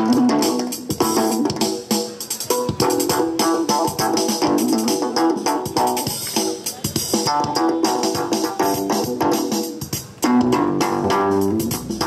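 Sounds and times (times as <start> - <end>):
electric plucked bass-like notes: 0.0 - 1.7, 2.5 - 6.2, 7.1 - 12.0.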